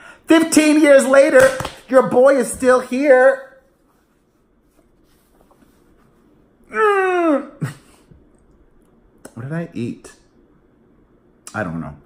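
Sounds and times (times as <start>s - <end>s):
fabric rustling: 3.7s - 6.6s.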